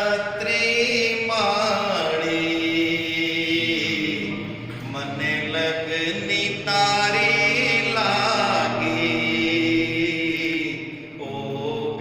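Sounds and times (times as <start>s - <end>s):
devotional mantra chanting: 0.0s - 12.0s.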